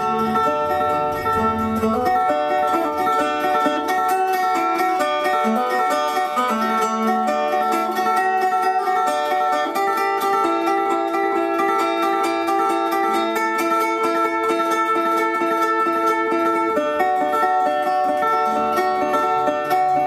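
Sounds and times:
resonator guitar fingerpicked: 0.0s - 20.0s.

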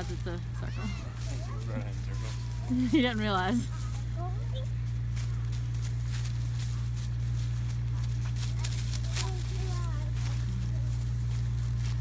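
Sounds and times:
footsteps crunching on dry leaves: 0.0s - 12.0s
steady low hum: 0.0s - 12.0s.

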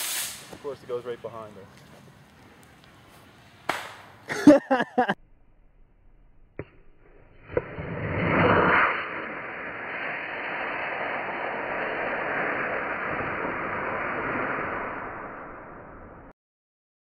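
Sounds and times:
rocket motor hissing: 0.0s - 0.7s, 7.5s - 15.9s
rocket launch pop: 3.7s - 4.1s, 6.6s - 16.3s.

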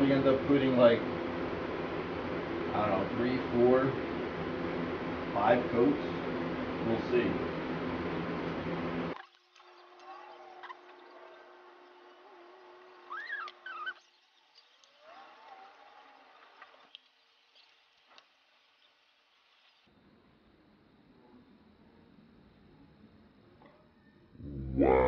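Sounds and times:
loud steady hum: 0.0s - 9.2s, 24.4s - 25.0s
faint bird calls: 9.8s - 14.1s.

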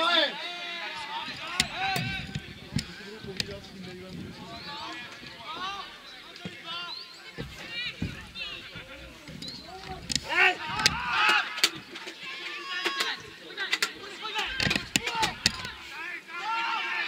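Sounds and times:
players shouting and calling: 0.0s - 17.0s.

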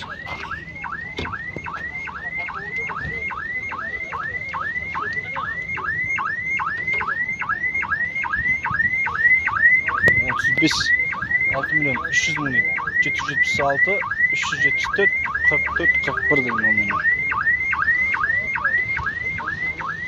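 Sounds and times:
car alarm whooping: 0.0s - 20.0s.

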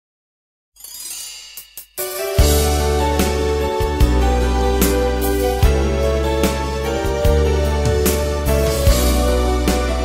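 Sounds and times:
music: 0.8s - 10.0s.

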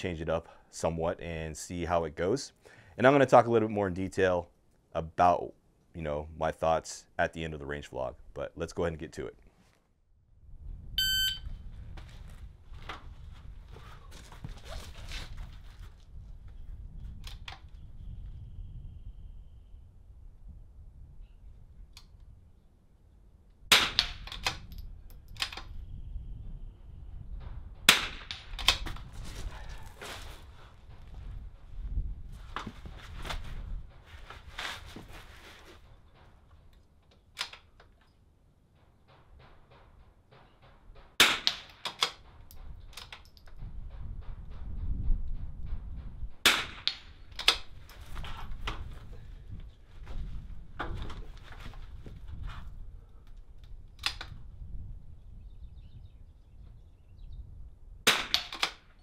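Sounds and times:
rifle handling clicks: 37.1s - 38.1s, 41.5s - 43.6s, 54.0s - 54.4s.

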